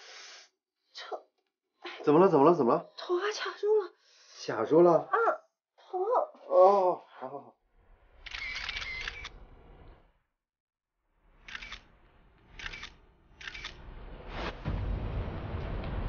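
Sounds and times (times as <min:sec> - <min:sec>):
camera shutter clicks: 0:08.3 - 0:09.4, 0:11.5 - 0:11.9, 0:12.6 - 0:13.8.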